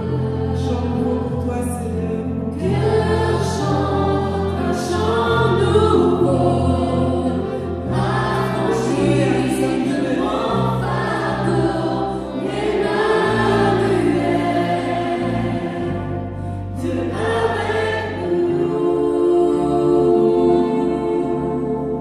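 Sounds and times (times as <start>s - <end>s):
held bass notes: 0.0s - 22.0s
keyboard accompaniment: 0.0s - 22.0s
men and women singing together: 0.0s - 22.0s.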